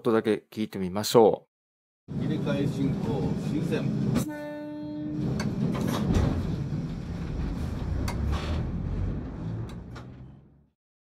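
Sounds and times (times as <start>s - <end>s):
electric train rumbling: 2.1s - 10.7s.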